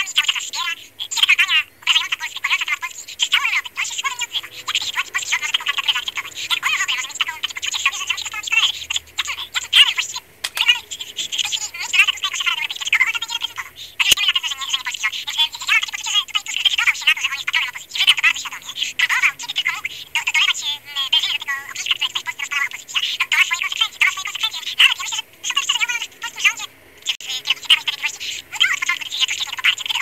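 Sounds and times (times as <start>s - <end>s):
person talking over telephone: 0.0s - 30.0s
sharp click: 10.4s - 10.7s.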